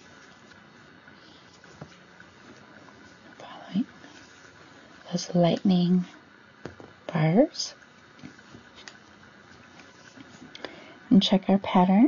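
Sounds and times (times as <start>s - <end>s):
faint rustle of yarn: 0.0s - 5.4s, 9.4s - 10.5s.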